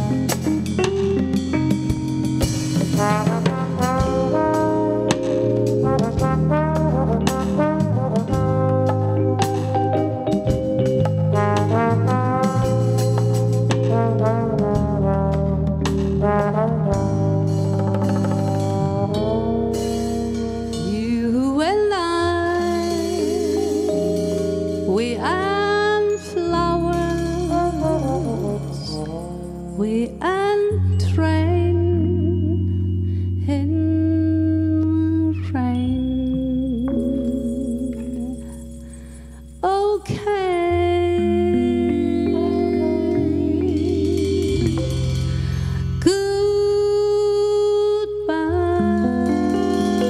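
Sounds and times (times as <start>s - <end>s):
trombone melody: 0.0s - 30.6s, 41.0s - 46.4s, 48.4s - 50.0s
bass guitar: 0.0s - 50.0s
keyboard: 0.0s - 50.0s
live band playing slow ballad: 0.0s - 50.0s.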